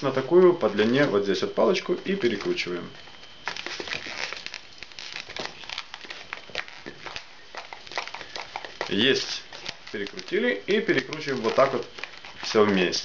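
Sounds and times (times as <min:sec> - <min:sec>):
balloon squeaking and crinkling: 0:00.0 - 0:13.0.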